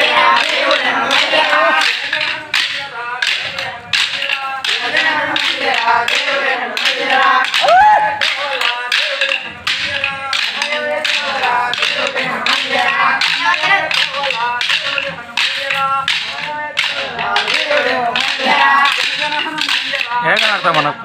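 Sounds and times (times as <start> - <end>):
dance sticks clacking: 0.0 - 21.0
people singing devotional song: 0.0 - 21.0.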